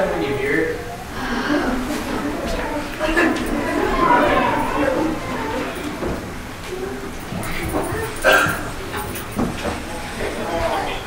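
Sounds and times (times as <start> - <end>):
low voices: 0.0 - 11.0.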